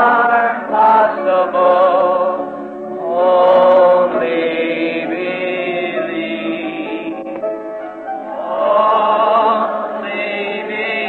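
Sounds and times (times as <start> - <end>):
group singing a slow hymn: 0.0 - 7.5, 8.3 - 11.0.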